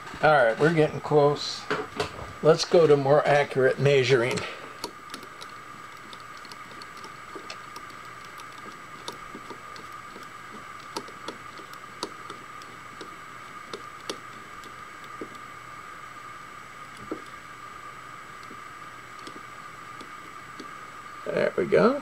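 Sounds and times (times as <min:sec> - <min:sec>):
steady machine whine: 0:00.0 - 0:22.0
micrometer clicks and ticks: 0:02.6 - 0:15.5, 0:16.8 - 0:17.5, 0:18.2 - 0:20.9.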